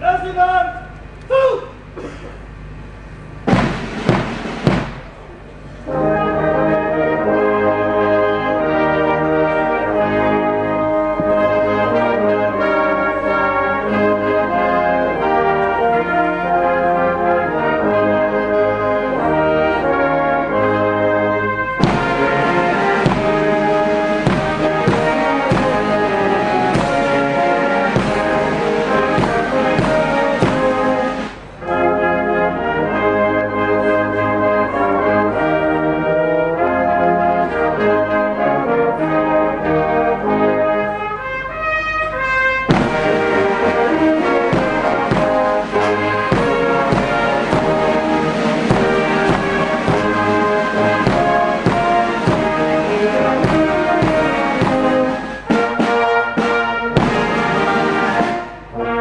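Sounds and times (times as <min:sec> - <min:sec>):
brass band playing slow chords: 0:01.8 - 0:59.0
drum and cymbal strokes: 0:21.8 - 0:31.6, 0:42.7 - 0:58.7.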